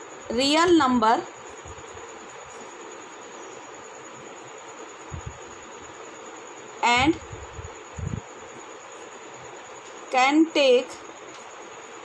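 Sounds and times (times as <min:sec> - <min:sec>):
background hiss: 0:00.0 - 0:12.0
faint high whine: 0:00.0 - 0:12.0
woman's voice: 0:00.3 - 0:01.3, 0:06.8 - 0:07.5, 0:10.1 - 0:11.0
soft low thumps: 0:05.1 - 0:05.4, 0:07.0 - 0:08.2.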